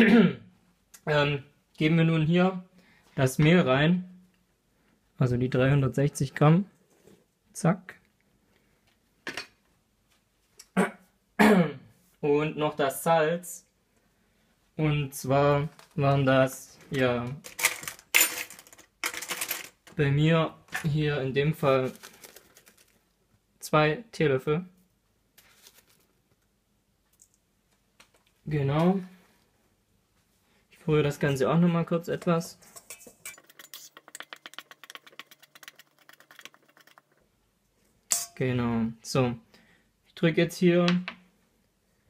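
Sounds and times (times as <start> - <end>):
plastic packet rustling: 21.8 - 23.1, 25.4 - 26.4
utensil scraping metal bowl: 32.2 - 37.2
metal spoon clinking: 32.6 - 37.0, 38.1 - 38.4.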